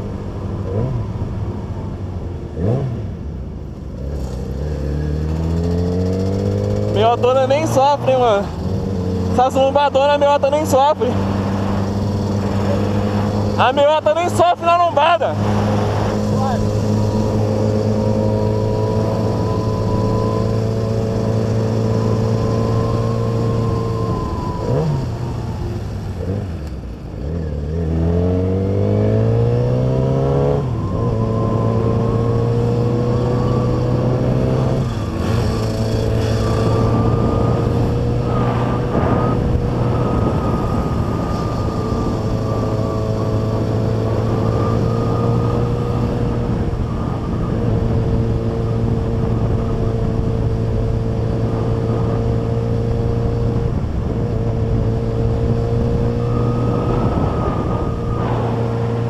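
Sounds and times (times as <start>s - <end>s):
motorcycle engine cruising: 0.0s - 59.0s.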